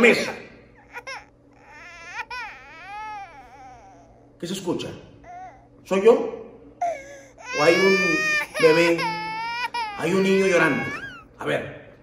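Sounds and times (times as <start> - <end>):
baby crying: 0.8 - 4.4, 5.2 - 5.7, 6.8 - 11.4.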